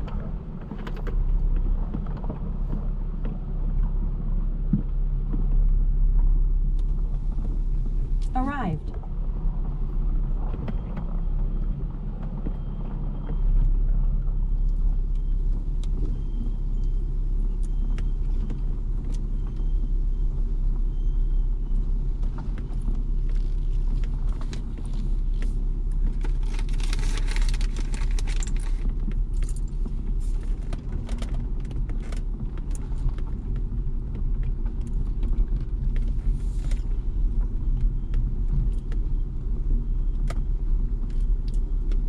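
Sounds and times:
car engine and tyre rumble: 0:00.0 - 0:42.0
gravel clicking under tyres: 0:00.0 - 0:42.0
gravel crunching: 0:21.2 - 0:42.0.

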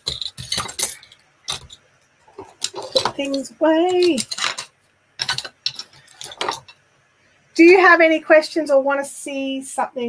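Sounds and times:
wooden objects clacking: 0:00.0 - 0:06.8.

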